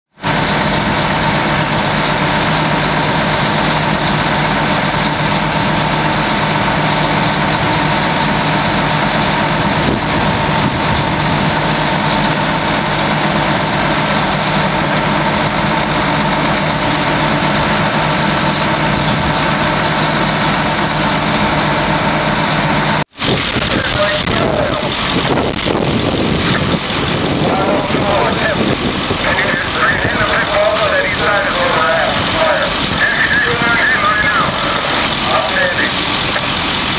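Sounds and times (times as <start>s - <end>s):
heavy vehicle engines idling: 0.1s - 36.9s
indistinct voices: 0.4s - 25.5s, 26.2s - 36.7s.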